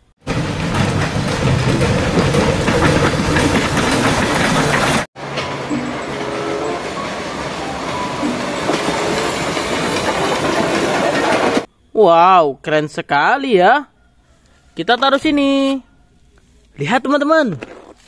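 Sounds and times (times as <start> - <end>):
steam locomotive running on track: 0.0 - 11.7.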